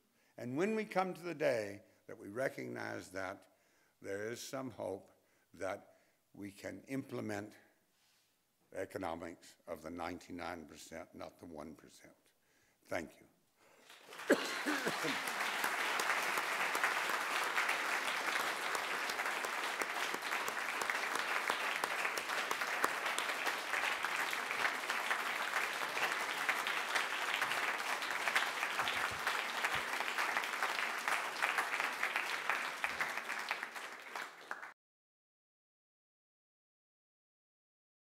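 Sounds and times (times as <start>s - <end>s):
audience applause: 13.8s - 34.7s.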